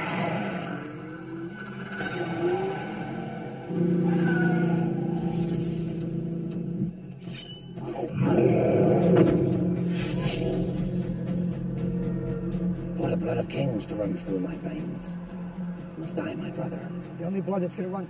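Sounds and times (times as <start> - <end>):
roar: 0.0 - 6.9, 8.1 - 10.8
dark film score: 0.0 - 18.0.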